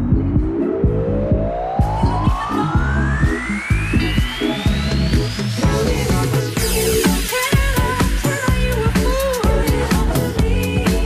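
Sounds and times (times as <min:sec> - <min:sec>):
rising riser tone: 0:00.0 - 0:07.5
disco house music: 0:00.0 - 0:11.0.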